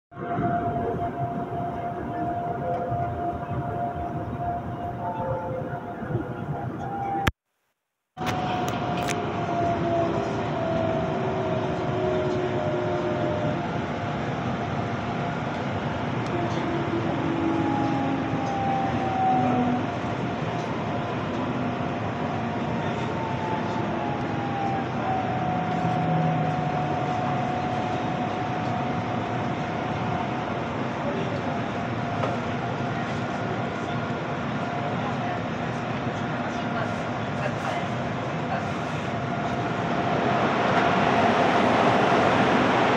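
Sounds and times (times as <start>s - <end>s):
train wheels rumbling on rail: 8.2s - 42.9s.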